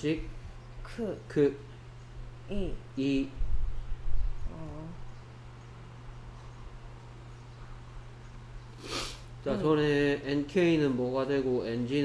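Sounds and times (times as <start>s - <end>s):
faint room noise: 0.0s - 12.0s
low electrical hum: 0.0s - 12.0s
person speaking: 2.4s - 3.4s, 4.4s - 5.1s, 9.4s - 12.0s
sharp breath in: 8.8s - 9.3s.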